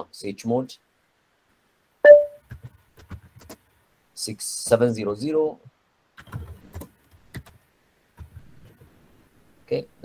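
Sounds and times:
keyboard typing: 0:06.2 - 0:07.6.

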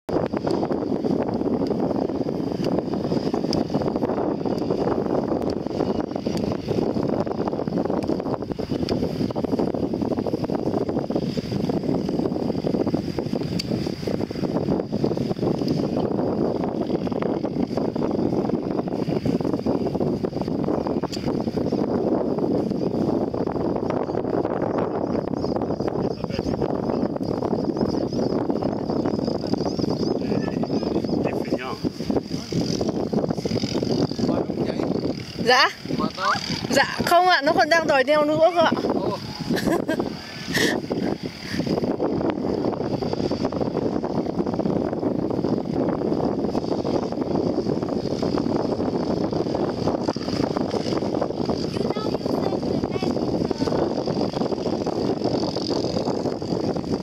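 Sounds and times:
wind buffeting microphone: 0:00.1 - 0:57.0.

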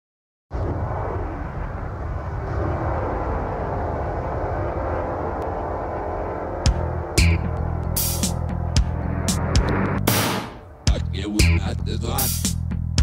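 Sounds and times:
electronic drone: 0:00.5 - 0:12.7.

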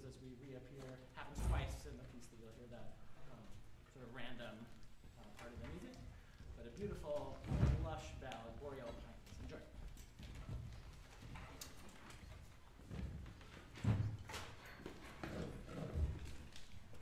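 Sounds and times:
footsteps on stage floor: 0:04.5 - 0:17.0.

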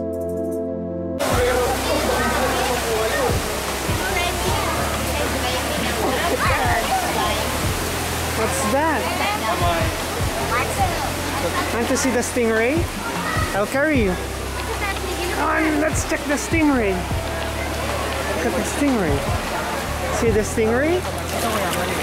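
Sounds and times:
people and children chattering: 0:01.2 - 0:22.0
running water rushing: 0:01.2 - 0:22.0.

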